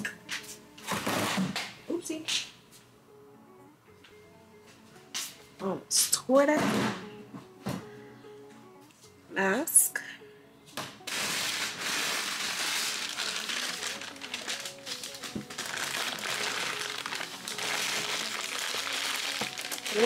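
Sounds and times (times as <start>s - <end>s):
quiet background music: 0.0s - 20.0s
packing material crinkling: 11.1s - 20.0s.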